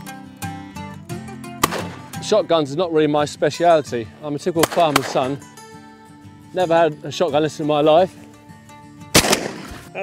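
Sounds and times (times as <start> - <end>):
shotgun shot: 1.6 - 2.2, 4.6 - 5.3, 9.1 - 9.9.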